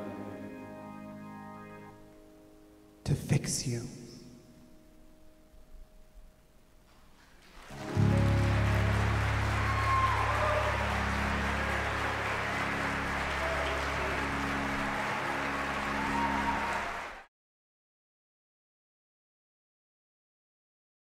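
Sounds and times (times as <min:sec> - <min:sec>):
audience applause: 0:06.9 - 0:17.3
cheers: 0:07.6 - 0:17.3.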